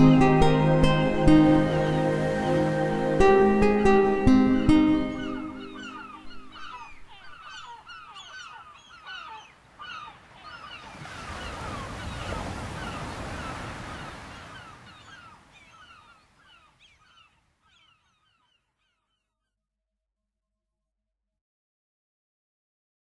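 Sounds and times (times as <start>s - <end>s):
flock of birds calling: 1.2s - 19.2s.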